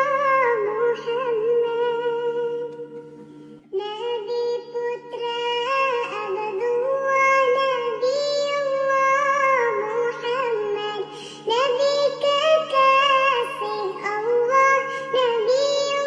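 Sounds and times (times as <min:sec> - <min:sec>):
high voice singing: 0:00.0 - 0:03.0, 0:03.7 - 0:16.0.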